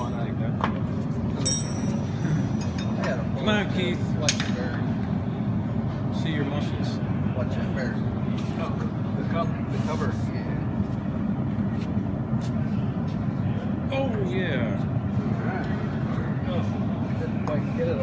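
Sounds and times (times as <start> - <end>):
low workshop rumble: 0.0 - 18.0
metallic tool clinks: 1.4 - 2.8.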